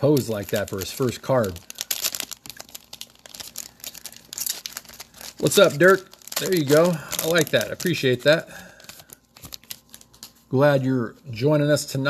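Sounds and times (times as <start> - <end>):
foil wrapper crinkling: 0.0 - 10.5.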